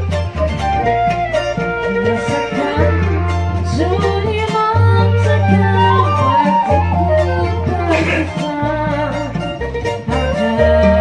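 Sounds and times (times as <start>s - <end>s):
bass holding low notes: 0.0s - 11.0s
plucked strings: 0.0s - 11.0s.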